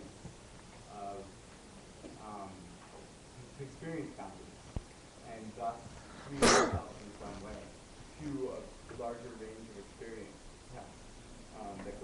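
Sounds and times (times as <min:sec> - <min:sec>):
person coughing: 0:06.4 - 0:06.9.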